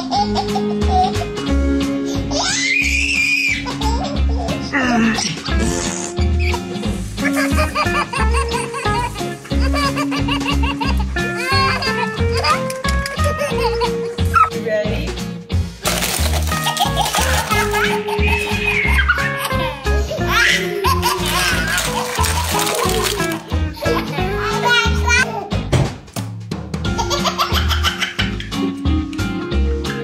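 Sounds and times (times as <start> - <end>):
babies laughing: 0.0 - 14.6, 15.9 - 25.6, 26.8 - 28.9
music with steady beat: 5.2 - 21.6, 22.8 - 30.0
young children's voices: 22.8 - 25.3.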